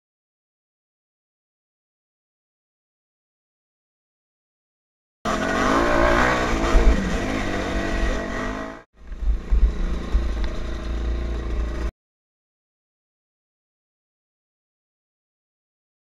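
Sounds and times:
dirt bike engine revving: 0:05.3 - 0:11.9.

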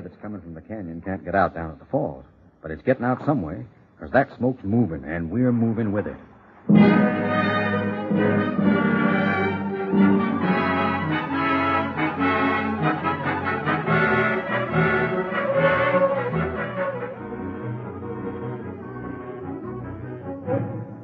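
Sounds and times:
orchestral music with brass: 0:06.7 - 0:21.0.

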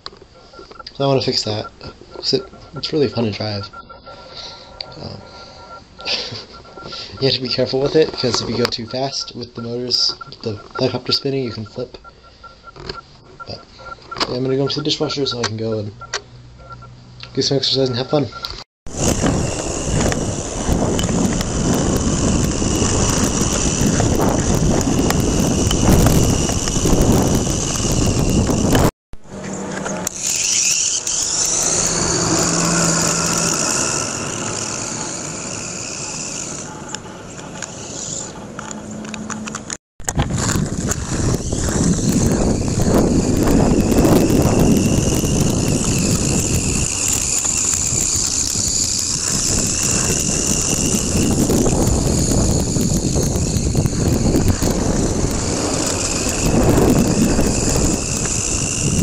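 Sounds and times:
high motor whine: 0:00.0 - 0:59.0
wheels rolling on road: 0:17.9 - 0:59.0.

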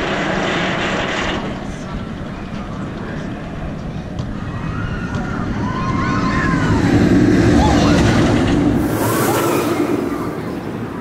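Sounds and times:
roller coaster rumbling on track: 0:00.0 - 0:11.0.

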